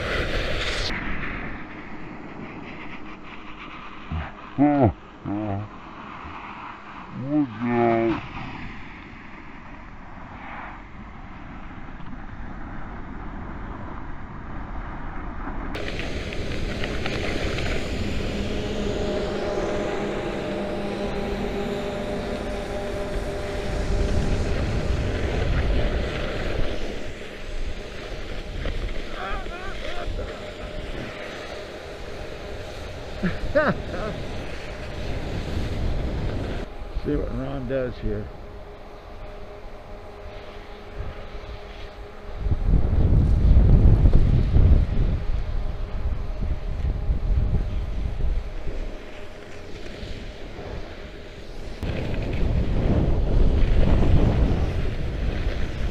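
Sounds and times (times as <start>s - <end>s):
skis scraping over icy snow: 0.0s - 4.4s, 15.8s - 55.9s
wind on microphone: 39.2s - 55.9s.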